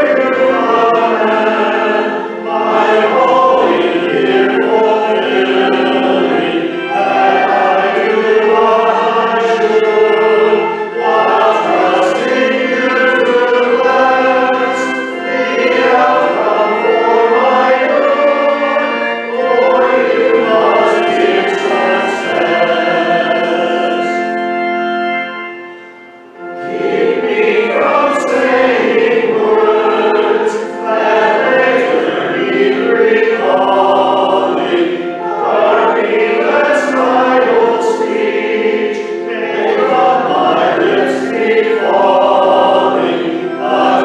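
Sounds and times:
organ accompaniment: 0:00.0 - 0:44.0
voices singing a hymn: 0:00.0 - 0:44.0.

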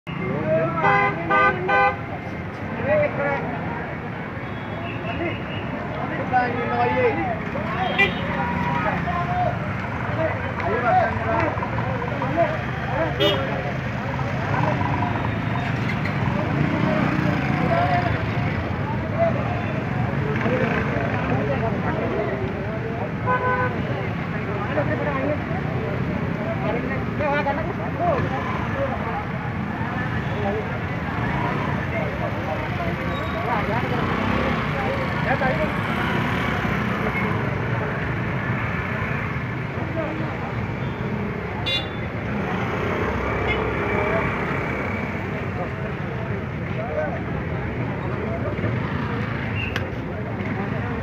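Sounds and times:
crowd chatter: 0:00.1 - 0:51.0.

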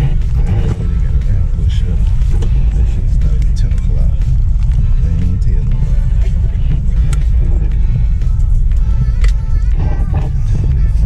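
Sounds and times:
jet airliner cabin rumble: 0:00.0 - 0:11.0
music playing: 0:00.0 - 0:11.0.

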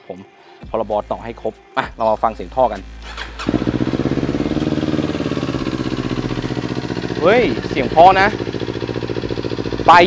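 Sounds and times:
motorcycle engine idling: 0:02.8 - 0:10.0.

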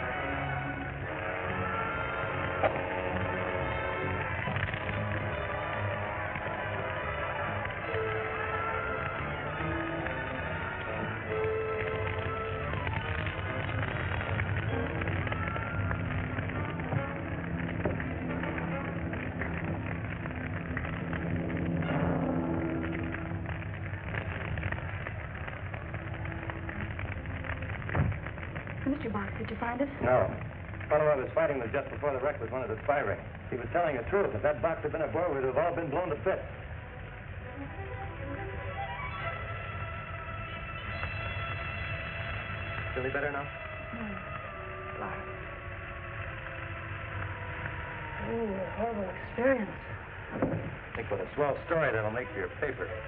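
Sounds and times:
dramatic orchestral music: 0:00.0 - 0:53.0
fire crackling: 0:00.0 - 0:53.0.

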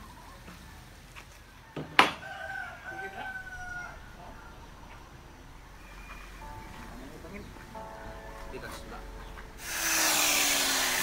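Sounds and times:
rooster crowing: 0:01.6 - 0:05.0.

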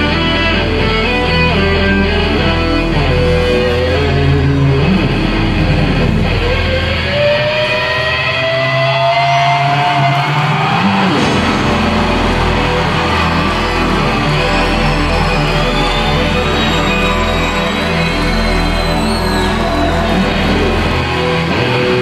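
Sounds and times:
instrumental live band: 0:00.0 - 0:22.0
held lead note rising: 0:10.9 - 0:21.6.

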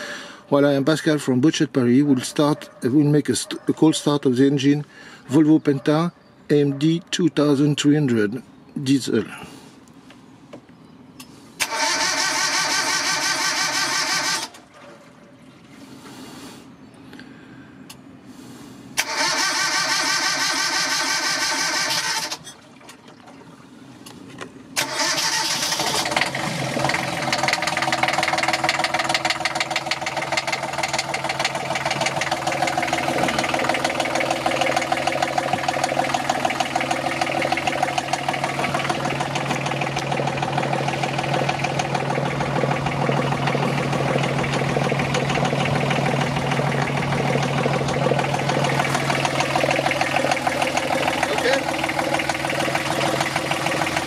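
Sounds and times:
diesel engine cranking: 0:11.2 - 0:14.7, 0:18.9 - 0:23.0, 0:24.0 - 0:54.0
diesel engine idling: 0:24.8 - 0:54.0.

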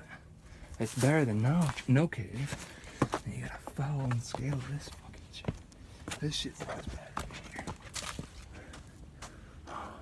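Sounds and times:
knocks and scuffs on rock: 0:01.6 - 0:04.8.

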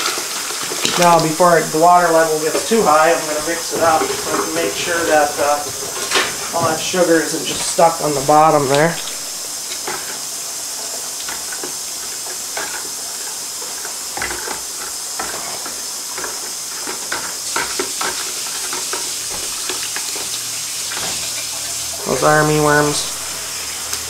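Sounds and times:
wet sloshing in a bucket: 0:00.0 - 0:09.6.

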